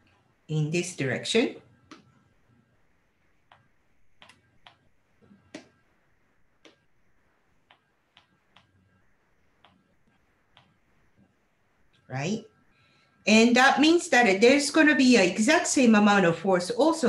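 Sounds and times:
stylus tapping on tablet screen: 0:01.8 - 0:02.3, 0:03.1 - 0:12.0.

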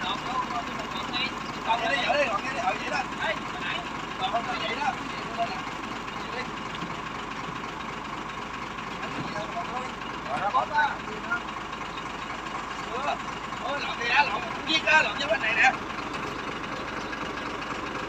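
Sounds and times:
men talking: 0:00.0 - 0:16.6
engine idling: 0:00.0 - 0:18.0.

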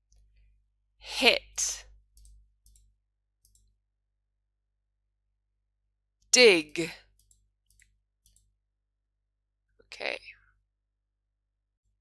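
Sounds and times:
computer mouse clicks: 0:02.1 - 0:03.7, 0:07.2 - 0:08.5.

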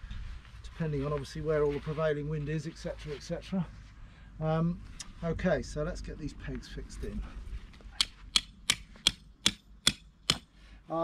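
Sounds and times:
hammer striking metal peg: 0:08.0 - 0:10.5.

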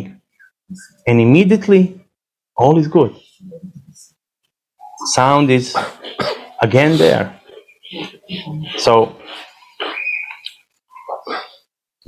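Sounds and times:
person making throat sounds: 0:05.6 - 0:10.0, 0:11.0 - 0:11.7.

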